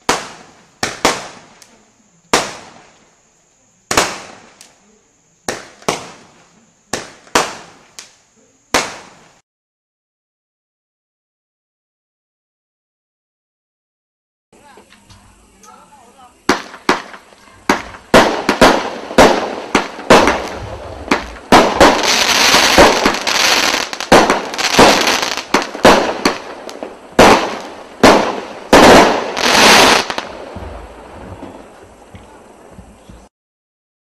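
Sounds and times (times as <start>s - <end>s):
firework shots thumping: 0.0s - 1.6s, 5.5s - 6.3s, 6.9s - 8.1s, 16.5s - 33.3s.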